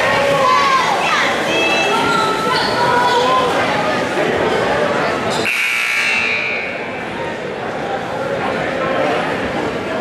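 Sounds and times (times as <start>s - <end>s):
crowd chatter: 0.0s - 10.0s
scoreboard buzzer: 5.4s - 6.9s.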